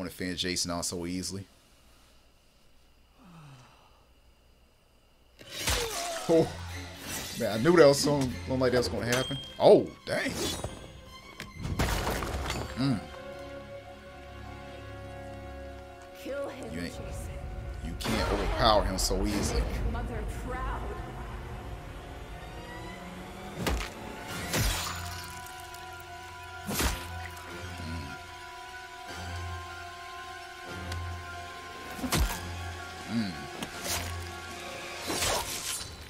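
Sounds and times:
man sighing: 0:03.1 - 0:04.2
low steady rumble: 0:16.9 - 0:24.2.

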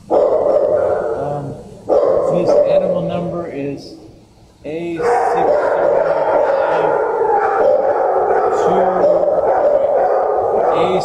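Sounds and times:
dogs barking: 0:00.0 - 0:11.0.

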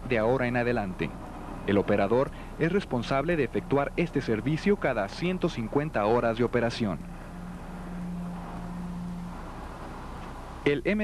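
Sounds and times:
diesel engine running: 0:00.0 - 0:10.8.

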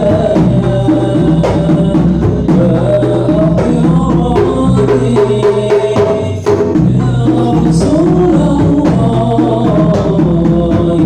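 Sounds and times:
frame drums played by hand: 0:00.0 - 0:11.0
man singing into microphone: 0:00.0 - 0:11.0.

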